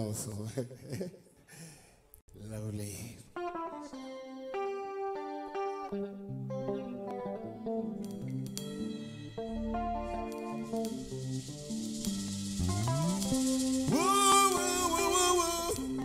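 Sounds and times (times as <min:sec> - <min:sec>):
electric bass guitar: 0:03.4 - 0:16.0
plucked guitar melody: 0:03.4 - 0:16.0.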